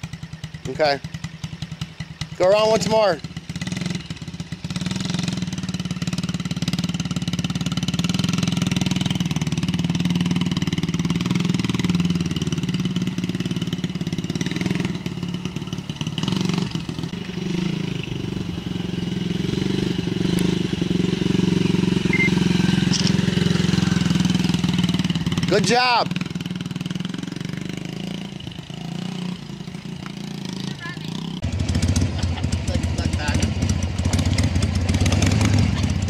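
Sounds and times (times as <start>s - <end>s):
dirt bike engine running: 0.0s - 36.0s.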